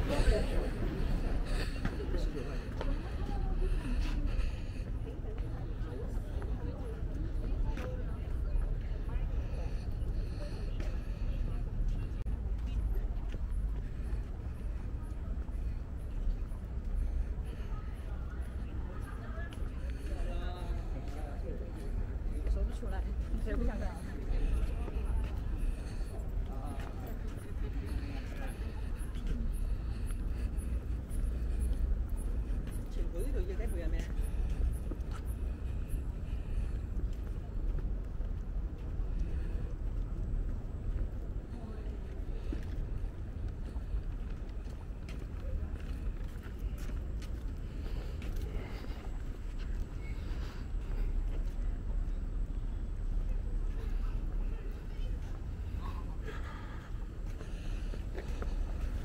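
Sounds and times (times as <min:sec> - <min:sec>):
low rumble of traffic: 0:00.0 - 0:59.0
passers-by talking indistinctly: 0:00.0 - 0:59.0.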